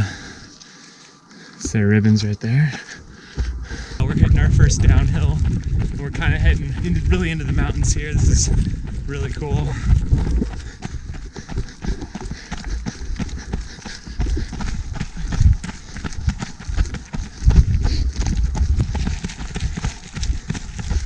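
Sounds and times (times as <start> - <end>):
running footsteps on gravel: 2.5 - 21.0.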